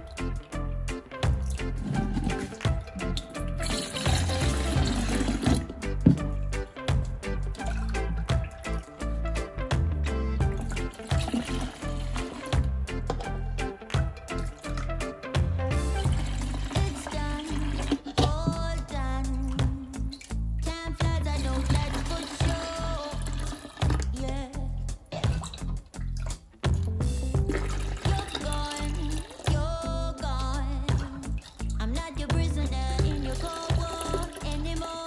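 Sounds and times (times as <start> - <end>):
background music with steady beat: 0.0 - 35.0
drink pouring into plastic jug: 1.8 - 5.8, 7.6 - 8.9, 10.6 - 13.3, 15.9 - 18.3, 21.6 - 24.1, 27.5 - 29.5, 33.2 - 34.6.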